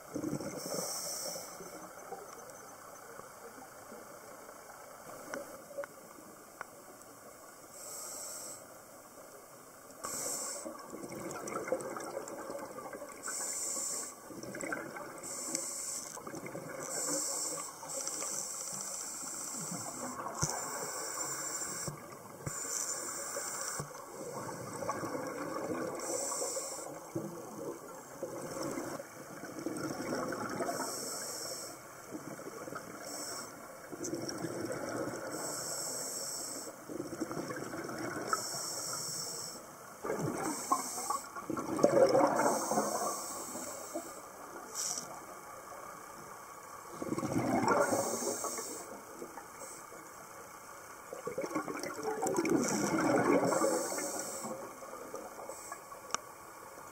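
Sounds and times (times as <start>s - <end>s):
exhaled bubbles gurgling underwater: 0.0s - 4.4s, 9.9s - 56.9s
scuba regulator inhalation hiss: 0.5s - 1.7s, 7.7s - 8.8s, 10.0s - 10.9s, 13.2s - 14.3s, 15.2s - 24.8s, 25.6s - 27.1s, 30.6s - 31.9s, 33.0s - 33.7s, 35.3s - 36.8s, 38.3s - 39.8s, 40.4s - 41.4s, 42.3s - 45.3s, 47.6s - 50.0s, 52.6s - 54.8s.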